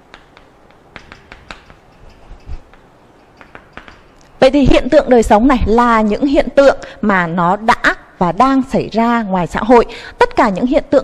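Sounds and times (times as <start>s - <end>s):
chalk tapping on chalkboard: 0.0s - 4.4s.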